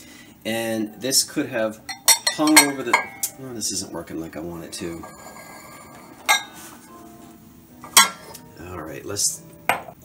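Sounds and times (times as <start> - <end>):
glass dishes clinking: 1.8 - 3.4, 4.7 - 6.6, 7.8 - 8.4.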